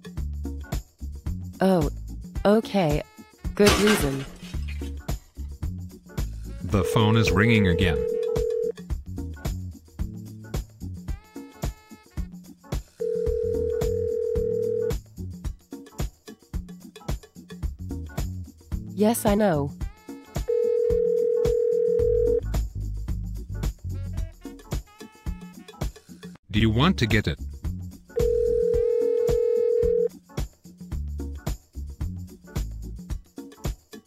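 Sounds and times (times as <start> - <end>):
background music with beat: 0.0 - 2.4, 4.9 - 19.0, 19.8 - 26.4, 27.4 - 34.0
electronic telephone ring: 6.8 - 8.7, 13.0 - 14.9, 20.5 - 22.4, 28.2 - 30.1.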